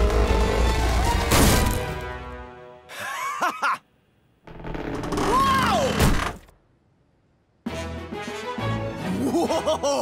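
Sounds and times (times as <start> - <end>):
cartoon creaking with gliding pitch: 4.5 - 6.4.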